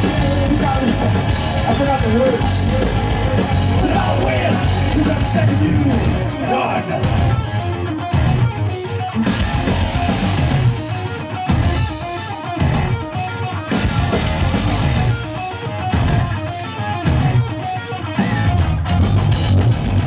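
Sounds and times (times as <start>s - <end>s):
heavy metal band playing live: 0.0s - 20.0s.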